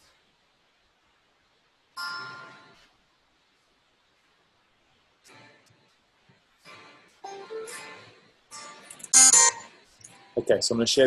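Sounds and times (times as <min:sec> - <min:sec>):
electric guitar chords strummed: 0:06.7 - 0:10.4.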